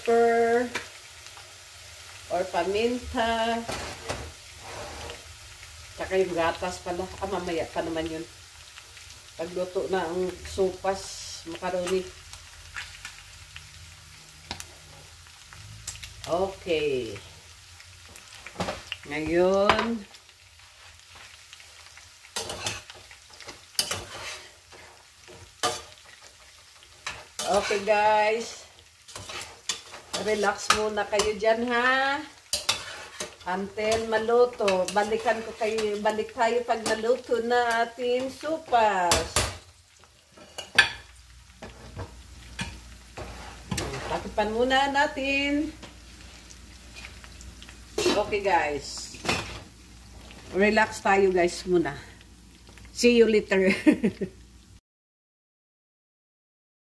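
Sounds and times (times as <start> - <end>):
chicken sizzling in a saucepan: 0.0 - 54.8
metal spoon stirring: 22.4 - 27.9, 29.1 - 31.4, 32.4 - 36.1.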